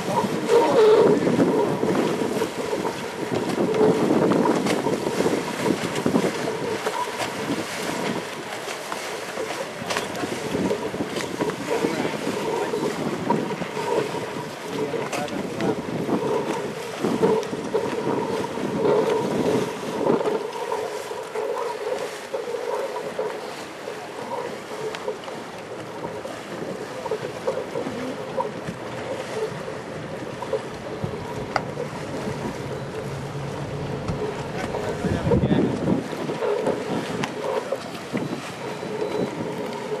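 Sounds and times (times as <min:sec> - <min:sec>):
wind gusting on microphone: 0:00.0 - 0:08.6, 0:09.4 - 0:25.2, 0:25.8 - 0:40.0
waves lapping and splashing: 0:00.0 - 0:40.0.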